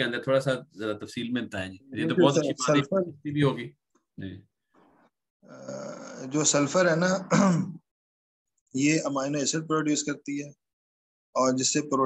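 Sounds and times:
man speaking: 0:00.0 - 0:04.5, 0:05.6 - 0:07.7.

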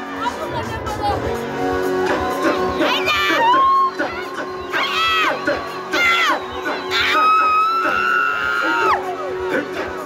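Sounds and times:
live music through a stage pa: 0:00.0 - 0:10.0
crowd cheering: 0:02.0 - 0:10.0.

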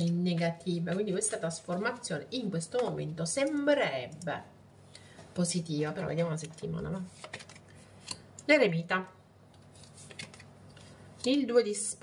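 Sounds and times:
cards rustling: 0:07.0 - 0:08.2, 0:09.6 - 0:11.0.

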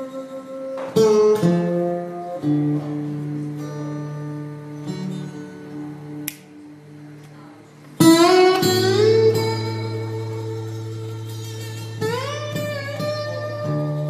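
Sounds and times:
quiet held guitar notes: 0:00.0 - 0:14.0.

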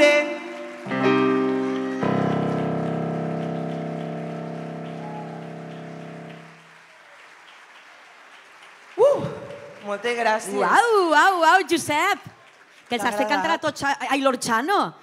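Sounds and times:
keyboard chord held: 0:00.8 - 0:06.6.

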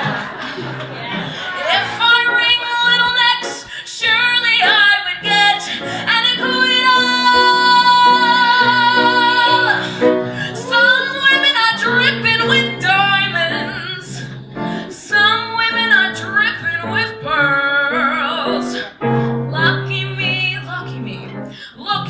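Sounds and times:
piano accompaniment: 0:00.0 - 0:22.0
woman singing: 0:01.5 - 0:22.0.

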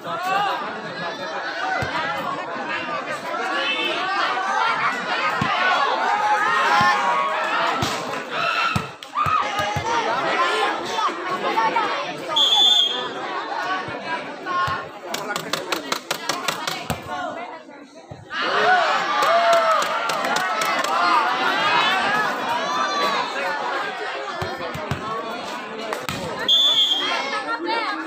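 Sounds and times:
crowd chattering and shouting: 0:00.0 - 0:28.0.

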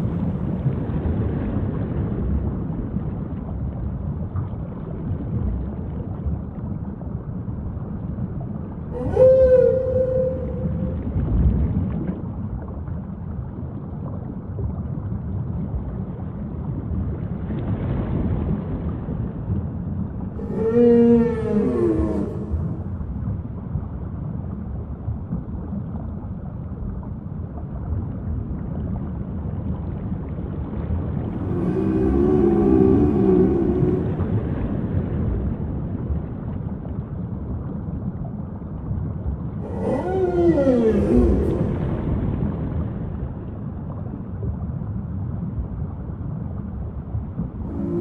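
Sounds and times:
rushing water: 0:00.0 - 0:48.0
whale moaning calls: 0:08.9 - 0:11.2, 0:20.3 - 0:23.2, 0:31.3 - 0:35.0, 0:39.6 - 0:42.6, 0:47.5 - 0:48.0.

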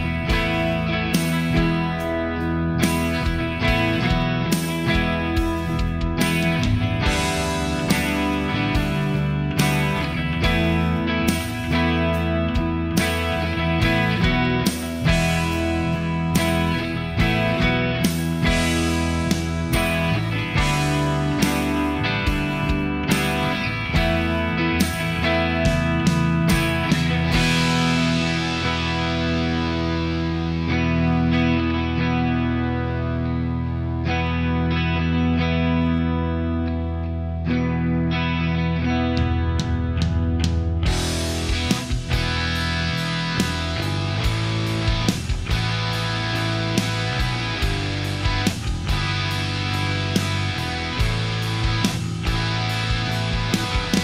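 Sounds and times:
steady beat: 0:00.0 - 0:29.7, 0:39.3 - 0:54.0
distorted electric guitar: 0:00.0 - 0:54.0.

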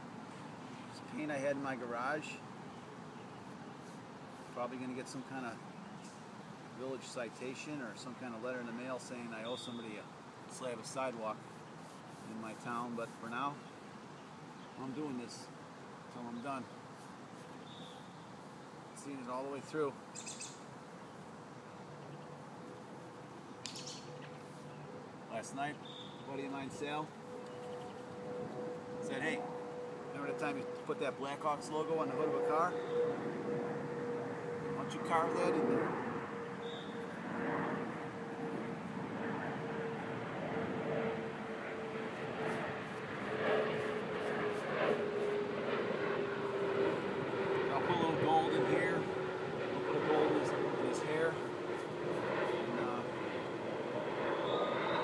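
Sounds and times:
faint background noise: 0:00.0 - 0:53.5
aircraft engine drone overhead: 0:00.0 - 0:55.0
small bird chirping: 0:17.4 - 0:18.6, 0:20.1 - 0:20.6, 0:23.6 - 0:24.8, 0:25.8 - 0:26.3, 0:36.6 - 0:37.0.

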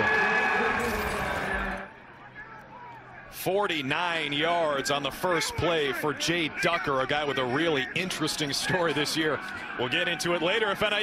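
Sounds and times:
stadium crowd: 0:00.0 - 0:11.0.

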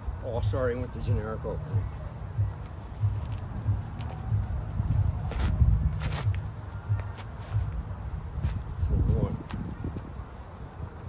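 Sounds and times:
footsteps on wood mulch: 0:02.5 - 0:10.1
sharp scuffs: 0:02.6 - 0:09.8.

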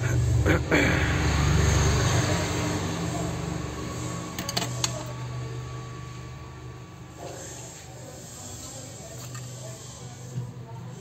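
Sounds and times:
clicks of phone parts handled: 0:04.4 - 0:05.1.

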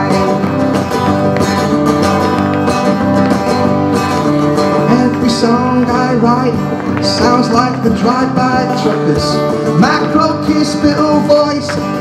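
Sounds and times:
guitars strumming folk song: 0:00.0 - 0:12.0.

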